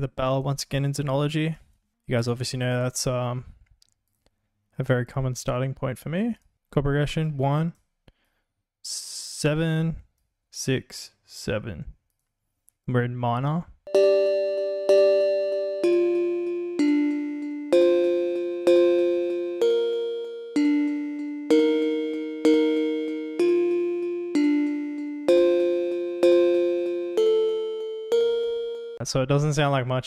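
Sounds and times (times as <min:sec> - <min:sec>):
synth bell chords: 0:13.9 - 0:29.0.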